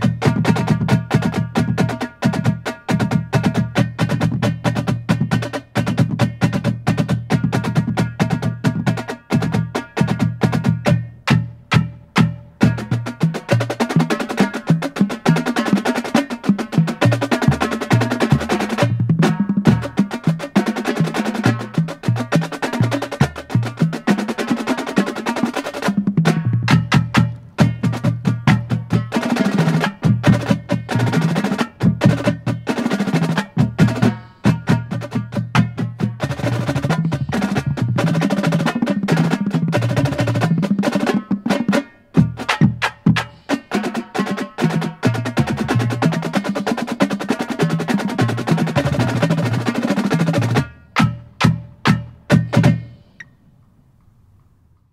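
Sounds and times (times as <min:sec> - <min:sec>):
marching drumline playing: 0:00.0 - 0:53.1
pitched bass drum notes: 0:00.0 - 0:53.1.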